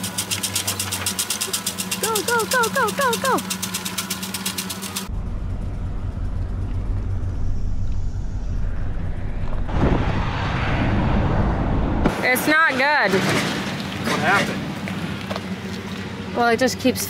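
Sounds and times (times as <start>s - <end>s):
pickup engine rumble: 0.0s - 12.3s
road and wind noise: 5.0s - 17.0s.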